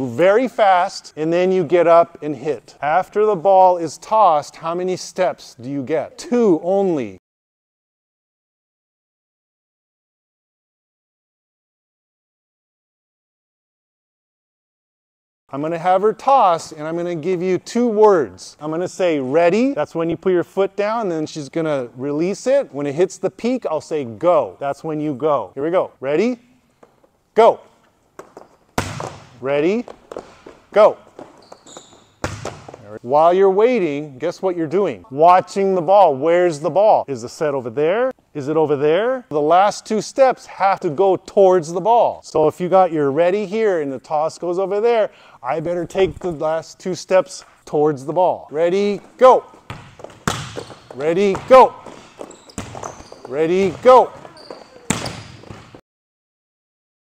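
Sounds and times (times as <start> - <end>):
volleyball smack echoing: 28.2 - 29.4, 32.2 - 32.8, 49.6 - 53.0, 53.6 - 55.8.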